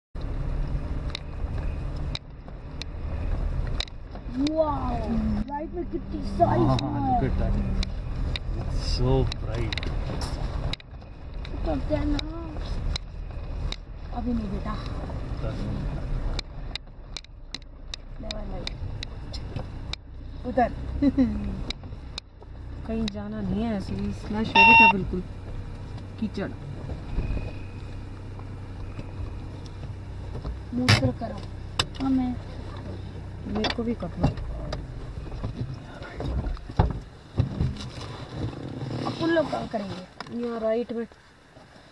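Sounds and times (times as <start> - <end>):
car engine and road rumble: 0.1 - 41.9
sharp knocks and clunks: 33.5 - 37.9.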